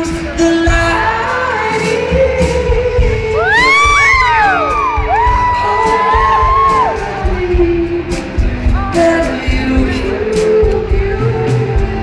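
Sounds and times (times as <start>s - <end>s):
live band playing: 0.0s - 12.0s
person singing: 0.0s - 12.0s.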